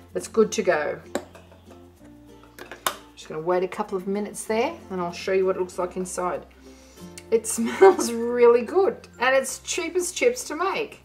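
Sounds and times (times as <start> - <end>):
quiet background music: 0.0 - 11.0
plastic lid clips snapping: 2.5 - 3.1.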